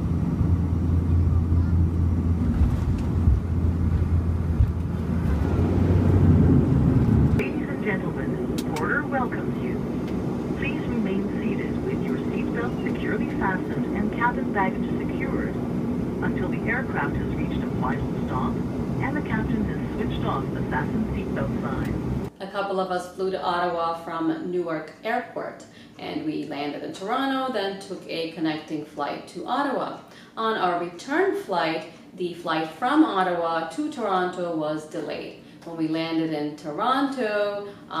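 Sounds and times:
propeller engine drone: 0.0s - 22.3s
indistinct voices: 7.4s - 22.1s.

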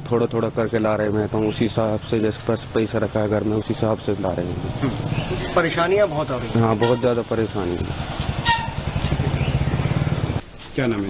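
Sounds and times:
vehicle engine running: 0.4s - 11.0s.

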